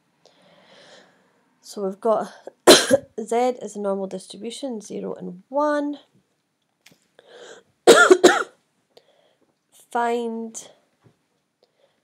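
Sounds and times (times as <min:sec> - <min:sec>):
intake of breath: 0:00.2 - 0:01.5, 0:07.2 - 0:07.7
person coughing: 0:02.6 - 0:03.1, 0:07.9 - 0:08.6.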